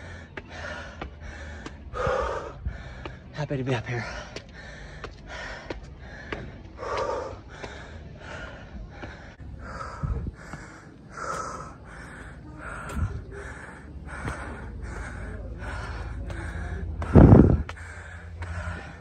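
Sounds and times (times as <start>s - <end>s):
man panting hard: 0.0s - 19.0s
low thumps: 14.1s - 19.0s.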